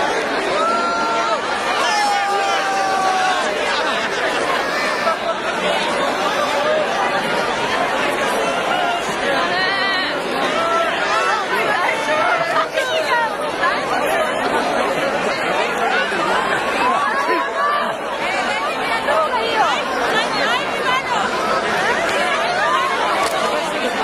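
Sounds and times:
crowd chatter: 0:00.0 - 0:24.0.

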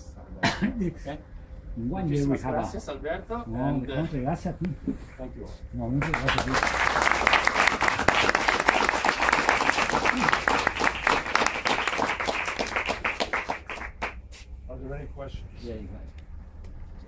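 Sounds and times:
audience applauding: 0:06.0 - 0:14.2.

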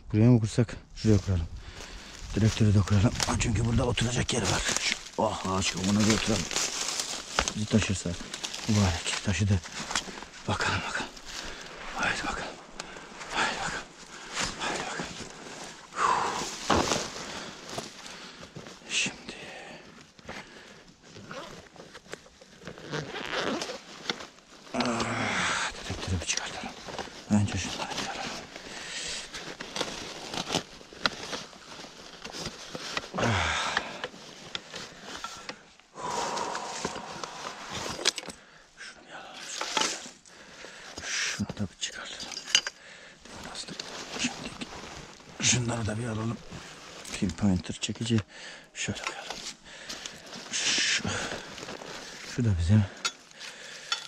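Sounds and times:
rustling in dry leaves: 0:01.0 - 0:38.0, 0:43.2 - 0:47.5, 0:49.2 - 0:54.0
bag being handled and opened: 0:01.1 - 0:38.4, 0:39.4 - 0:48.2, 0:48.8 - 0:54.0.

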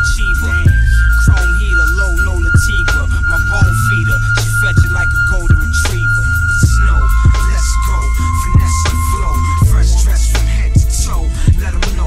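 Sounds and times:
long held high note: 0:00.0 - 0:10.2
hip hop drum loop: 0:00.0 - 0:12.0
voice in the mix: 0:00.0 - 0:12.0.

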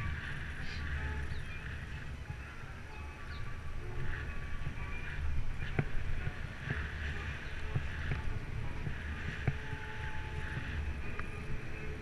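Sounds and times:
bicycle rolling on asphalt: 0:00.0 - 0:12.0
wind on microphone: 0:00.0 - 0:12.0.

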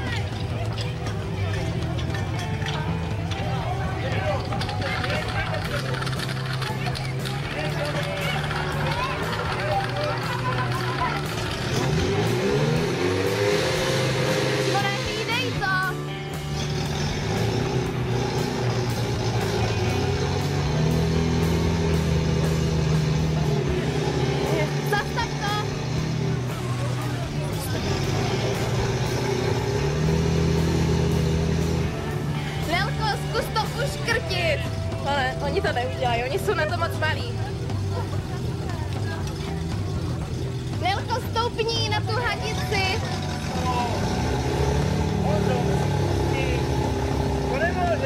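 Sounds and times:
pump engine revving: 0:04.1 - 0:35.4, 0:36.3 - 0:48.0.

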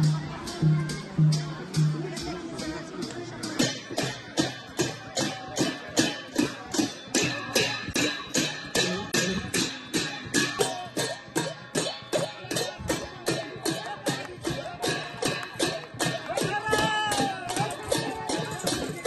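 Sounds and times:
hand drum beating: 0:00.0 - 0:19.0
cymbals beating: 0:03.4 - 0:19.0.

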